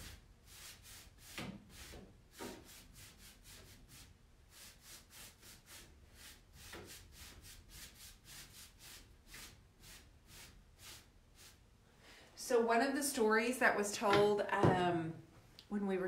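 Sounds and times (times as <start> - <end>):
paintbrush strokes on wood: 0.0 - 11.6.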